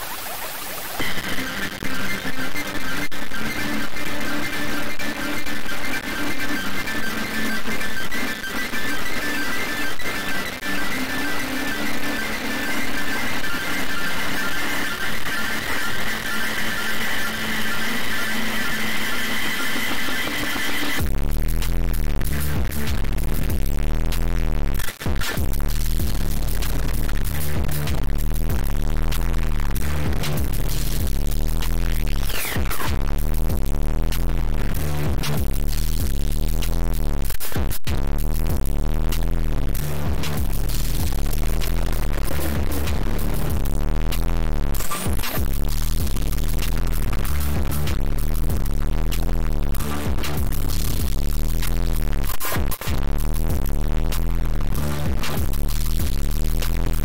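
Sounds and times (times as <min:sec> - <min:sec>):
hissy noise texture: 0:00.0 - 0:22.9
high whining tones: 0:01.0 - 0:21.0
pulsing phasing bass: 0:01.0 - 0:24.8, 0:25.4 - 0:37.3, 0:37.9 - 0:52.3, 0:52.9 - 0:57.0.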